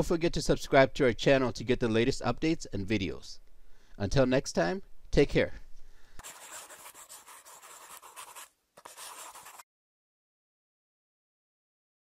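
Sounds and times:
pen scribbling: 0:06.2 - 0:09.6.

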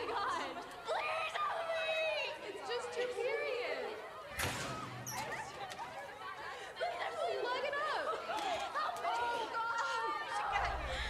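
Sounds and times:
young women shouting and jeering: 0:00.0 - 0:11.0.

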